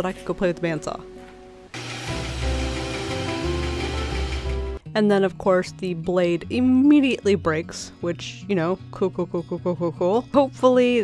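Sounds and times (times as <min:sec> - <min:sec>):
background music: 0:00.0 - 0:11.0
bandsaw cutting wood: 0:01.7 - 0:04.8.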